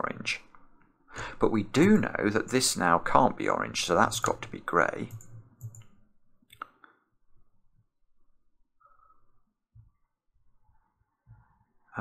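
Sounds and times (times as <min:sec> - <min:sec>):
computer mouse clicking: 0:05.0 - 0:05.9.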